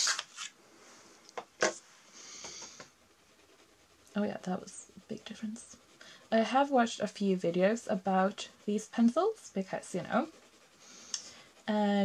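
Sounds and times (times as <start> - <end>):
pencil scratching on paper: 2.4 - 12.0.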